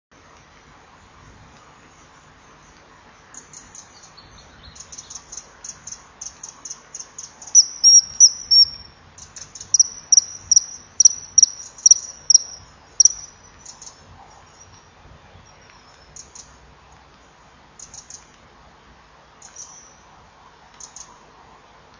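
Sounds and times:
kingfisher shrill whistled calls: 0:07.6 - 0:08.9, 0:09.8 - 0:13.4.

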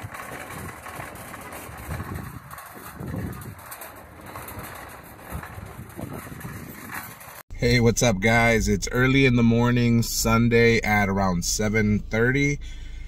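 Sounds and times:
shopping cart rattling on asphalt: 0:00.0 - 0:09.2.

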